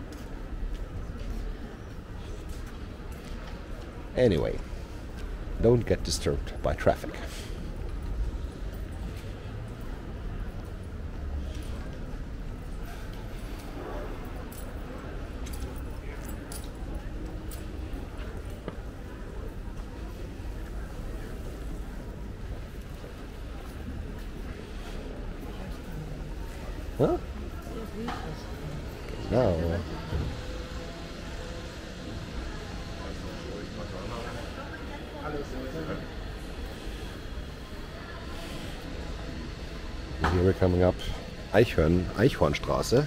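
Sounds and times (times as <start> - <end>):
faint voices of passers-by: 0.0 - 43.0
people talking: 5.6 - 7.4, 25.4 - 43.0.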